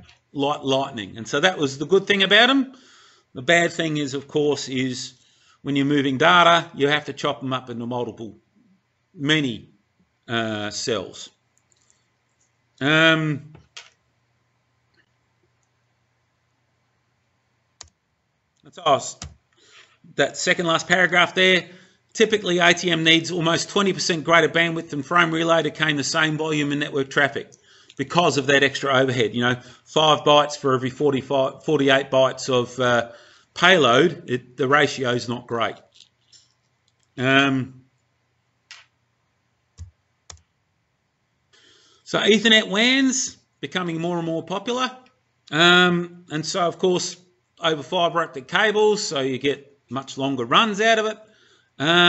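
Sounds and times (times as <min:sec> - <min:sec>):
short breath in: 0:02.7 - 0:03.3, 0:05.2 - 0:05.6, 0:21.7 - 0:22.0, 0:33.1 - 0:33.5, 0:41.5 - 0:42.1, 0:51.3 - 0:51.8.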